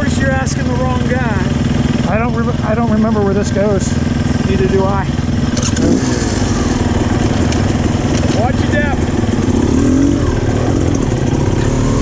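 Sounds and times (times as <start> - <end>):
dirt bike engine idling: 0.0 - 12.0.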